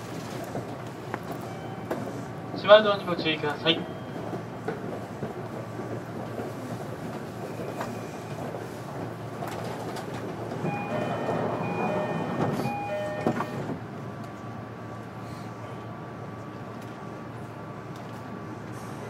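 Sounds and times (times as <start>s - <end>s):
train rumbling on rails: 0.0s - 19.0s.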